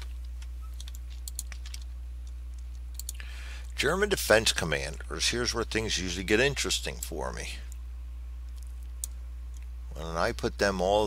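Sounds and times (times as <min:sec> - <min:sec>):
computer mouse clicks: 0:00.0 - 0:03.2
steady low hum: 0:00.0 - 0:11.0.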